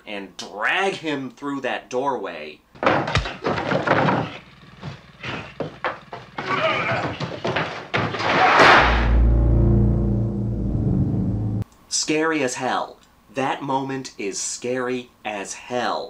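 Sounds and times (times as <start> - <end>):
metal sliding door slamming: 8.1 - 9.4
low steady hum: 8.8 - 11.9.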